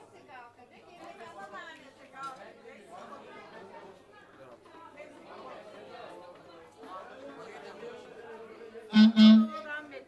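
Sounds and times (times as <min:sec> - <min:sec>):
crowd chatter: 0:00.0 - 0:10.0
band instrument notes: 0:08.9 - 0:09.6.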